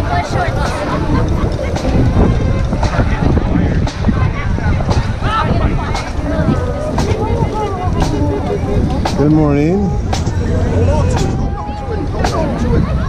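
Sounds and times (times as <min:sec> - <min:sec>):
people chattering: 0:00.0 - 0:13.0
wind buffeting microphone: 0:00.0 - 0:13.0.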